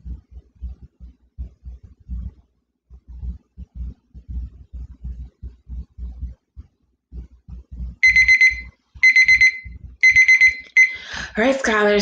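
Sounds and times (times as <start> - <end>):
timer quick high beeps: 8.0 - 11.0.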